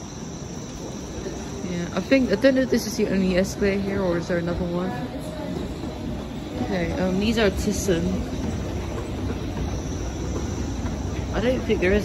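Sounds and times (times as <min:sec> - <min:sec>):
escalator rumbling: 0:00.0 - 0:12.0.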